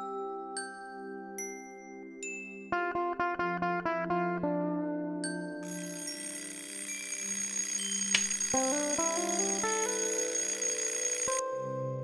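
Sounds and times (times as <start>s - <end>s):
alarm clock bell ringing: 5.6s - 11.4s.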